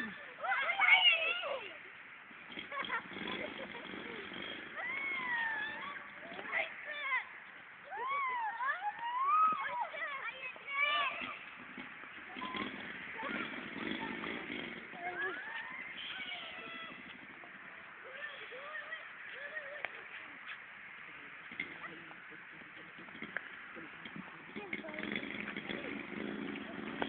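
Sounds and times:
children shouting while playing: 0.0s - 1.8s, 4.7s - 11.4s, 14.9s - 17.1s, 18.0s - 20.1s.

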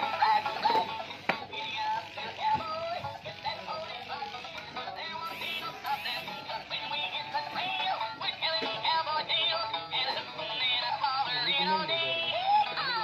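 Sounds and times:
synthesized singing voice: 0.0s - 13.0s.

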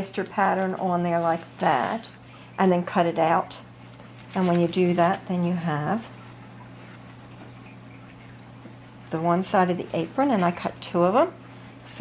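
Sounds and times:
fabric rustling: 0.0s - 2.1s
low room tone hum: 0.0s - 12.0s.

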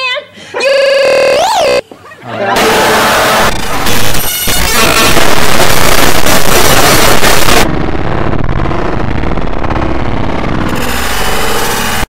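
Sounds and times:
harsh distorted noise: 2.5s - 12.0s.

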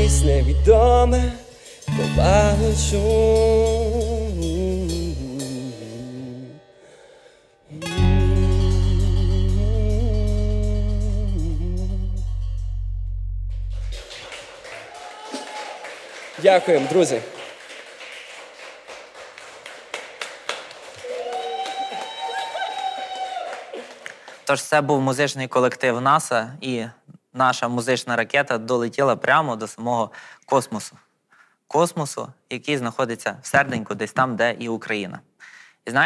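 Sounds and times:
live acoustic band playing: 0.0s - 6.5s, 7.7s - 12.8s
people clapping and tapping: 13.7s - 24.5s.

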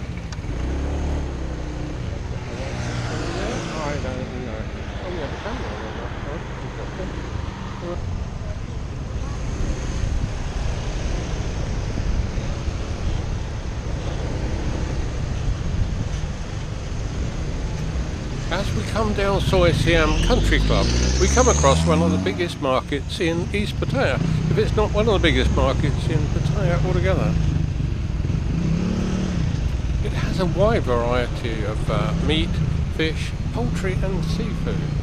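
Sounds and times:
road and traffic noise: 0.0s - 35.0s.

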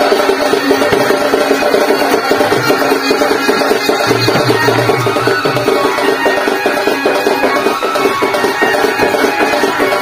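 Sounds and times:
drums beaten in quick rhythm: 0.0s - 10.0s
melody of short repeated notes: 1.8s - 10.0s.

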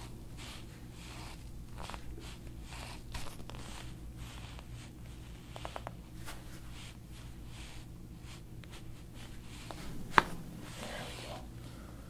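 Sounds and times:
hands rubbing over neck and hair: 0.0s - 11.5s.

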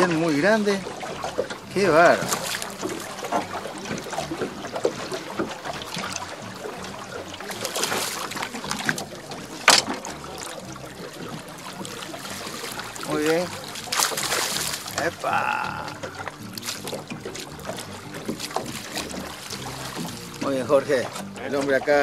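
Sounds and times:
water lapping against boat: 0.0s - 22.0s.

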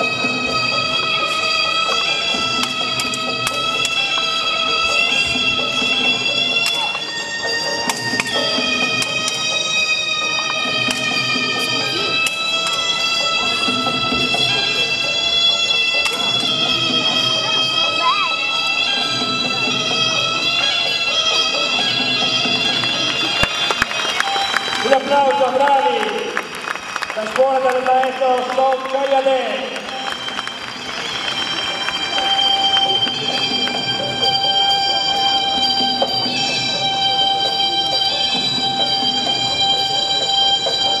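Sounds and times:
reed oboe fight music: 0.0s - 26.2s, 29.1s - 41.0s.

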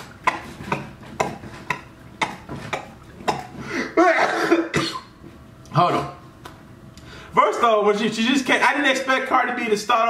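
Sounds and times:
man laughing and coughing: 3.8s - 5.1s.

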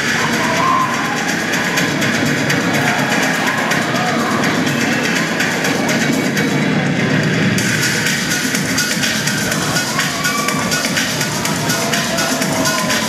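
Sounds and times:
music with singing and beat: 0.0s - 13.0s.

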